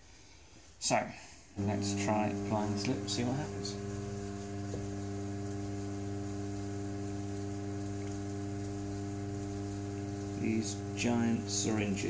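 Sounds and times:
pottery wheel motor humming: 1.6 - 12.0.

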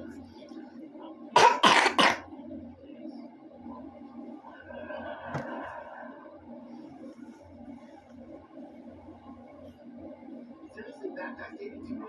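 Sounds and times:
person coughing: 1.4 - 2.3.

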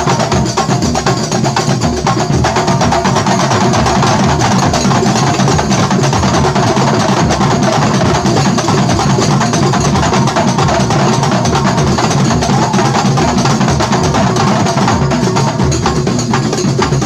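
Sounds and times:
frame drums and bass drums playing: 0.0 - 17.0.

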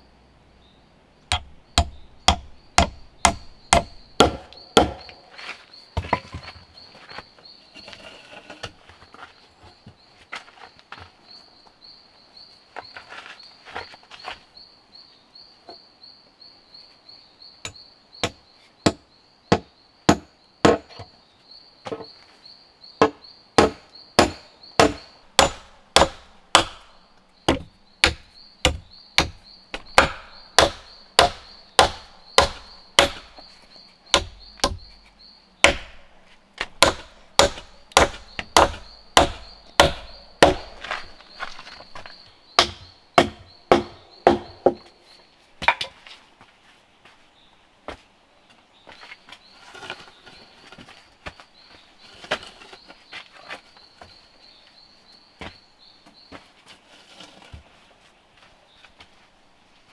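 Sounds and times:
faint high insect drone: 0.0 - 56.7
wooden mallet pounding logs: 1.3 - 5.2, 17.6 - 21.1, 23.0 - 33.5, 34.1 - 44.9, 45.6 - 46.0.

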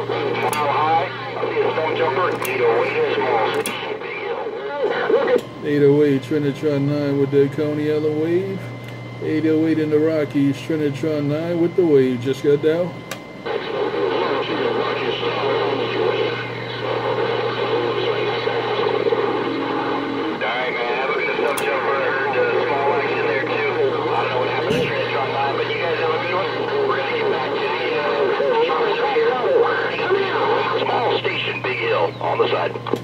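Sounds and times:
garbled voices through radio speaker: 0.0 - 33.0
radio clicks: 0.2 - 4.0, 13.0 - 20.1, 21.2 - 21.9, 30.0 - 33.0.

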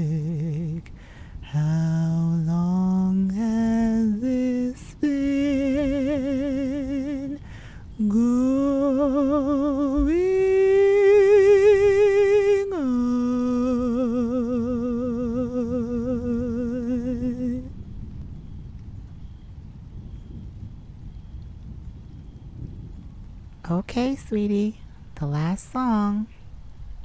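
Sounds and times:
person singing with vibrato: 0.0 - 17.8.

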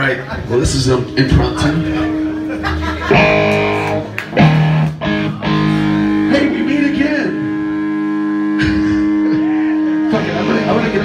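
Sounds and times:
electric guitar chords ringing: 0.2 - 11.0.

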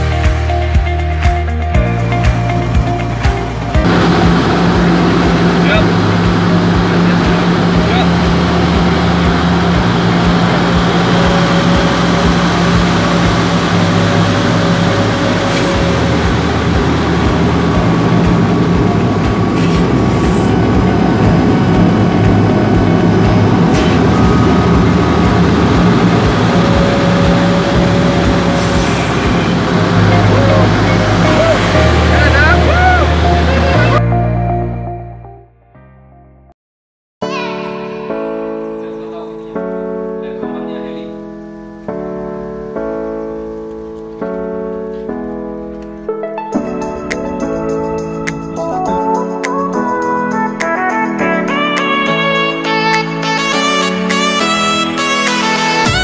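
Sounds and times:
background music: 0.0 - 36.5, 37.2 - 56.0
aircraft engine drone: 1.8 - 34.0, 41.8 - 56.0.

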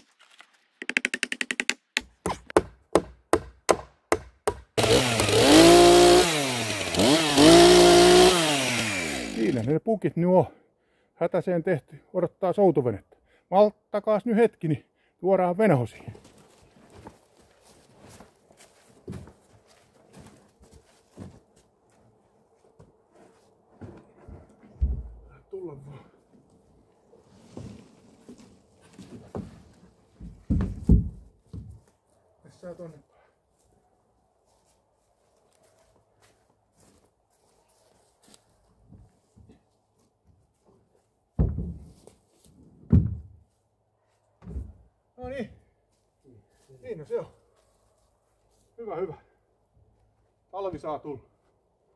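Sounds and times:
footsteps: 16.1 - 25.1, 34.4 - 41.1
heavy thump: 24.8 - 25.3.

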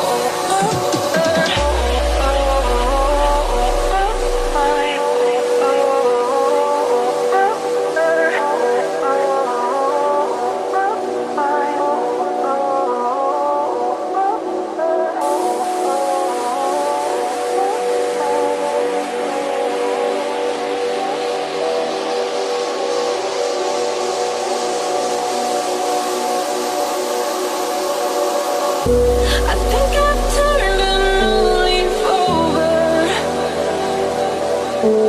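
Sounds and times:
rising noise sweep: 0.0 - 8.2, 15.2 - 35.0
synth pad chords: 0.0 - 35.0
heavy bass and kick drum: 0.6 - 4.8, 28.9 - 32.1.

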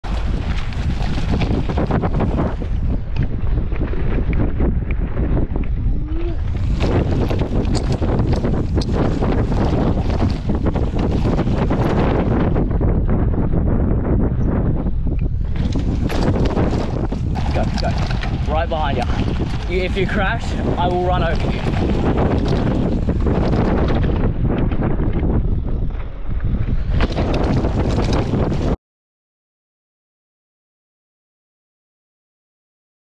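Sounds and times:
tyres on dirt trail: 0.0 - 28.8
wind rushing over microphone: 0.0 - 28.8
bike rattles and knocks: 6.4 - 12.8, 15.2 - 28.8.

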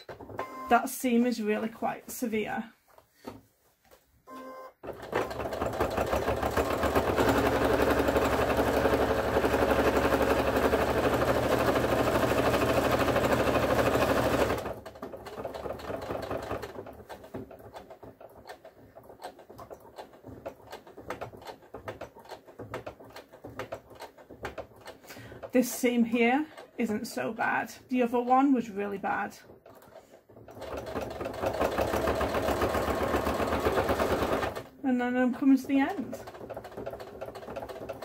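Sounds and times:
sewing machine motor running: 4.8 - 26.8, 29.6 - 34.7, 35.5 - 38.0.

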